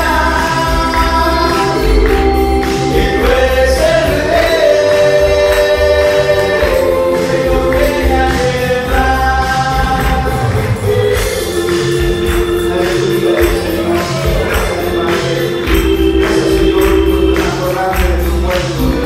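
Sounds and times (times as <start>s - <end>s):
gospel band playing: 0.0s - 19.0s
hand clapping: 0.0s - 19.0s
man singing into microphone: 0.0s - 19.0s.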